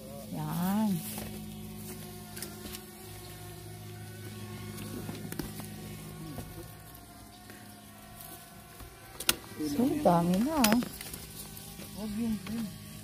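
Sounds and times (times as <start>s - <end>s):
low buzzing hum: 0.0s - 13.0s.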